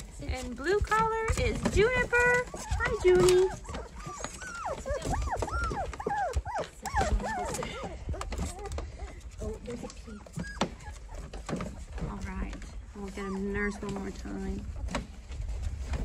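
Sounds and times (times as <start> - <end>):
paws scuffling on blanket: 0.0 - 16.0
puppies whimpering and whining: 0.5 - 14.9.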